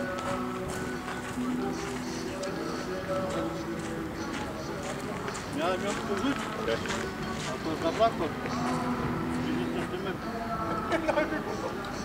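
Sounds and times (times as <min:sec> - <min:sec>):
footsteps crunching on gravel: 0:00.0 - 0:10.2
background music with held notes: 0:00.0 - 0:12.0.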